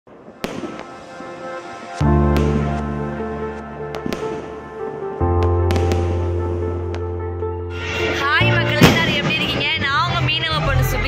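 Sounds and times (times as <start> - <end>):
firework bang: 0.1 - 2.8, 5.4 - 7.0, 7.8 - 9.8
firework crack: 0.1 - 2.9, 3.9 - 7.0, 7.8 - 9.9
faint music: 0.2 - 11.0.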